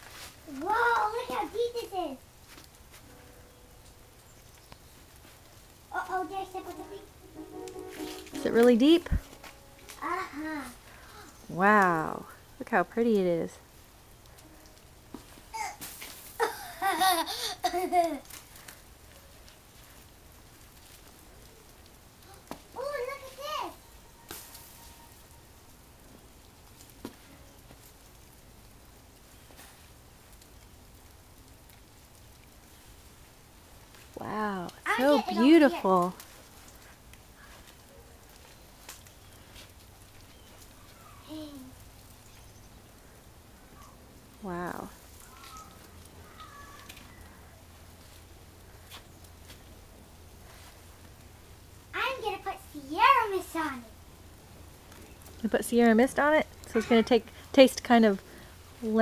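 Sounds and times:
faint outdoor hiss: 0:00.0 - 0:59.0
child speaking: 0:00.5 - 0:02.2, 0:05.9 - 0:07.1, 0:09.9 - 0:11.3, 0:22.2 - 0:23.8, 0:34.3 - 0:36.1, 0:41.0 - 0:41.8, 0:51.9 - 0:54.0
footsteps crunching in snow: 0:06.2 - 0:10.1.

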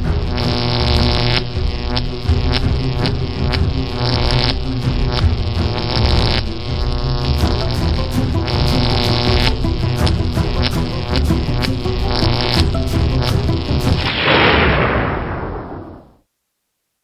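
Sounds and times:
electric buzzing drone: 0:00.0 - 0:16.0
electric crackle bursts: 0:00.0 - 0:16.2.

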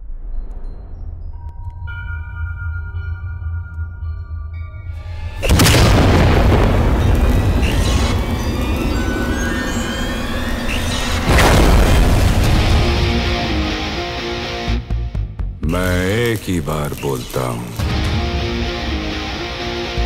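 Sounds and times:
dramatic film music: 0:00.0 - 0:20.0
heavy booming impact hits: 0:05.4 - 0:08.8, 0:11.2 - 0:13.8.

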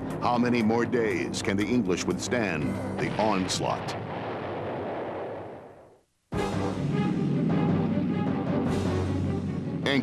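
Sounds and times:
bomb explosions rumbling: 0:03.0 - 0:08.1.

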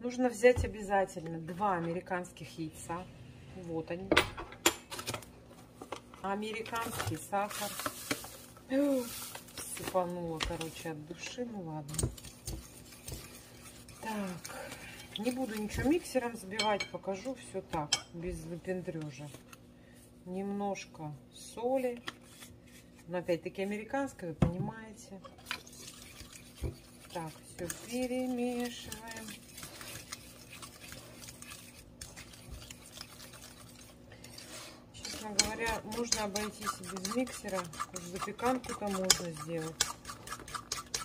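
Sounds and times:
fork stirring in a bowl: 0:10.4 - 0:18.1, 0:25.2 - 0:41.0.

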